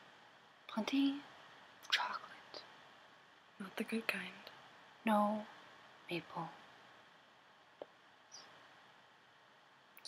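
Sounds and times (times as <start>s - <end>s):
woman whispering: 0.7s - 2.7s, 3.6s - 4.5s.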